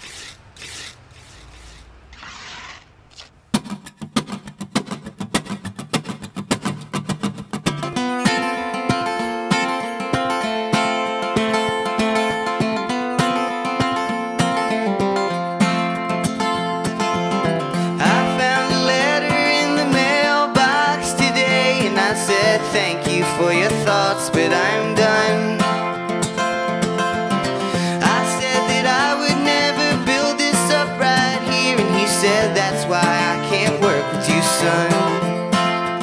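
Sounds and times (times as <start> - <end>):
acoustic guitar strumming: 3.5 - 36.0.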